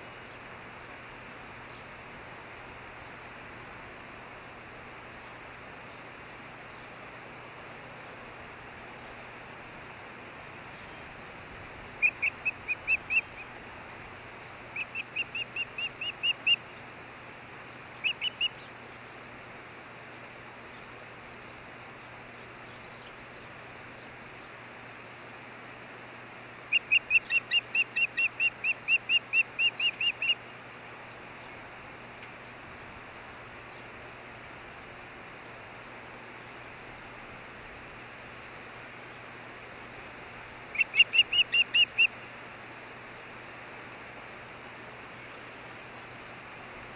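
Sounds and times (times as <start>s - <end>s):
osprey whistled chirps: 12.0s - 13.4s, 14.8s - 16.6s, 26.7s - 30.4s, 40.8s - 42.1s.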